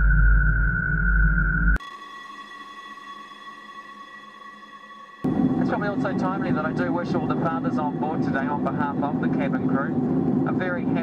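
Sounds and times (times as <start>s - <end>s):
electronic drone of pure tones: 0.0s - 1.8s
loud low rumble with high tone: 5.2s - 11.0s.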